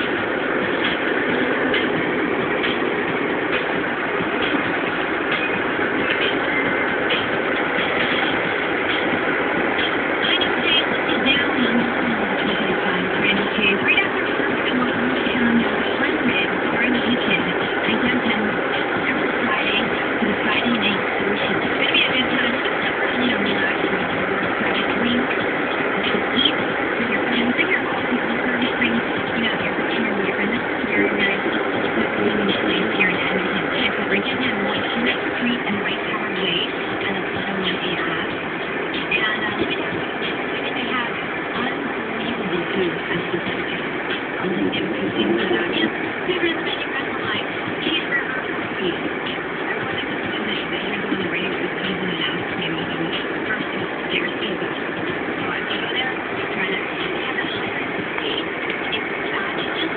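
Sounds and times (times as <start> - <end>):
car road and engine noise: 0.0 - 59.9
muffled voices: 0.0 - 59.9.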